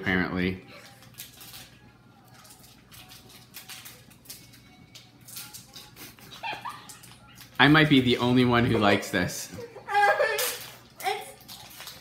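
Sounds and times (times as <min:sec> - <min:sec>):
stifled high-pitched laugh: 0:06.0 - 0:07.1.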